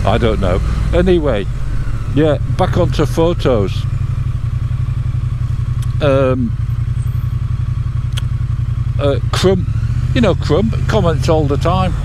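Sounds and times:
motorcycle engine running low: 0:00.0 - 0:12.0.

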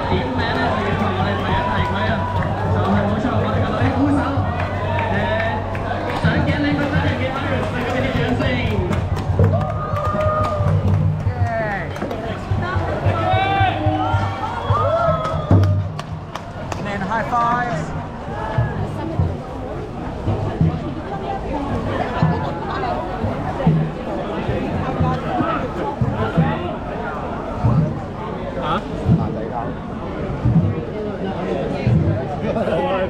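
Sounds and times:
music: 0:00.0 - 0:22.6
crowd talking: 0:00.0 - 0:33.0.

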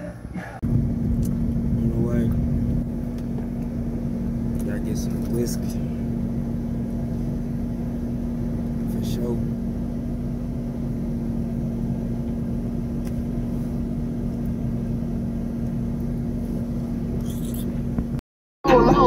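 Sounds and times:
car engine hum inside cabin: 0:00.0 - 0:19.0.

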